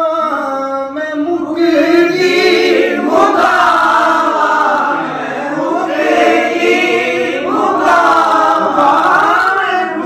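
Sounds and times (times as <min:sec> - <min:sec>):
men singing without instruments: 0:00.0 - 0:05.5, 0:07.9 - 0:10.0.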